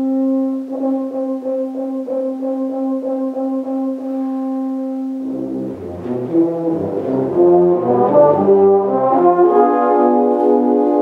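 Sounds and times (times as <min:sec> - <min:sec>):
brass ensemble low chords: 0:00.0 - 0:11.0
held brass note: 0:00.0 - 0:11.0
rapid repeated brass notes: 0:00.0 - 0:11.0.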